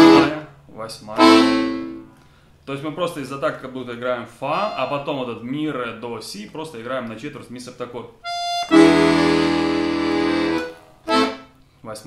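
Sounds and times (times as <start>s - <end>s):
accordion note and chord: 0.0s - 0.5s, 1.2s - 2.1s, 8.2s - 11.6s.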